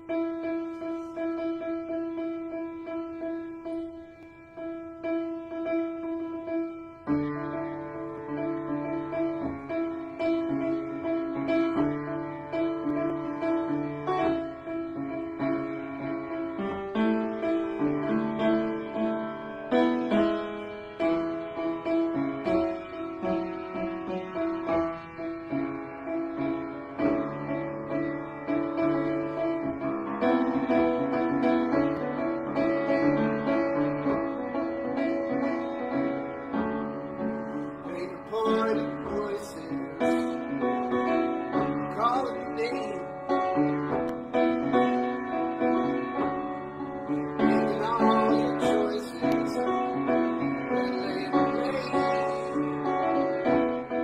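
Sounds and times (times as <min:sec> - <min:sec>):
solo piano playing: 0:00.0 - 0:54.0.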